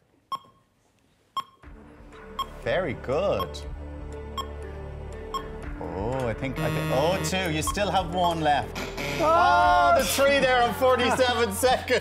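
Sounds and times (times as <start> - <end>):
electronic timer beeps: 0.3 - 0.6, 1.4 - 1.7, 2.4 - 2.6, 4.3 - 4.6, 5.3 - 5.6.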